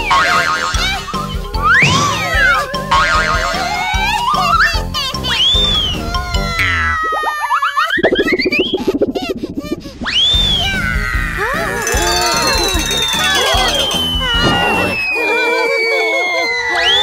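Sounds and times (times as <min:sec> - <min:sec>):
lively background music: 0:11.4 - 0:15.0
warbling whistle: 0:11.7 - 0:17.0
fast buzzing rattle: 0:11.8 - 0:14.3.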